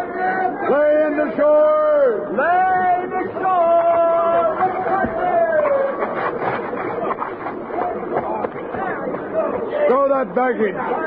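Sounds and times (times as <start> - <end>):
men shouting long calls: 0.0 - 6.0
jumble of overlapping voices: 0.0 - 11.0.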